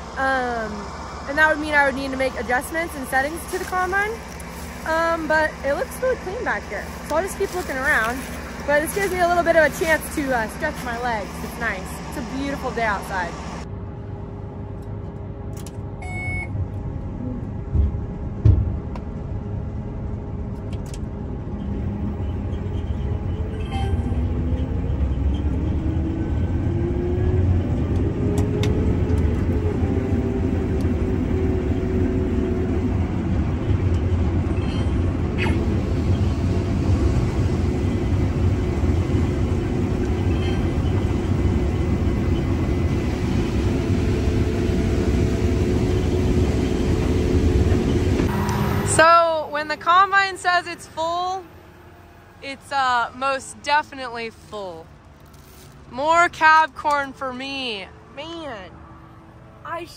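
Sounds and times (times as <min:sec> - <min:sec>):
climbing whine: 0:00.0 - 0:53.8
combine harvester running: 0:00.0 - 0:59.9.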